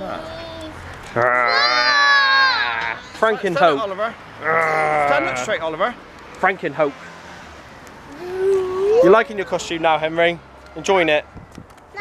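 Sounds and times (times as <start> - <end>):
child's high-pitched shout: 1.5 - 3.0, 8.1 - 9.5
soft child voice: 8.1 - 9.2.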